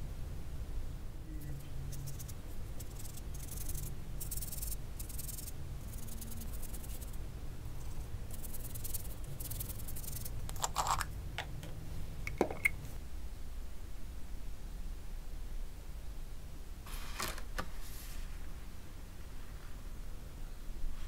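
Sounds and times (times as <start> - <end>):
brush scrubbing on paper: 1.9 - 7.2.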